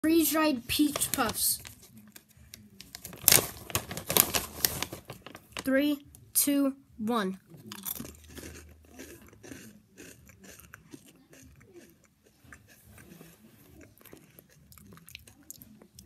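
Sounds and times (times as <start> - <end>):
candy crunching while chewed: 2.8 - 5.7, 7.6 - 16.0.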